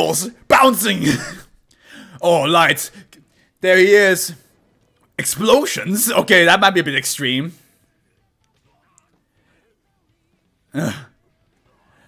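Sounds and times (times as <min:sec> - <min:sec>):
man clearing his throat: 0:10.7 - 0:11.2.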